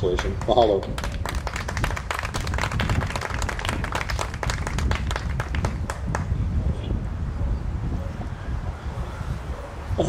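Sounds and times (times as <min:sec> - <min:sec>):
people applauding: 0:00.0 - 0:06.4.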